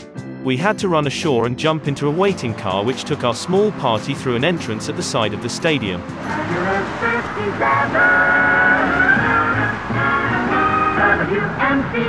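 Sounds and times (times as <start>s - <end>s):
music with long held notes: 0.0s - 12.0s.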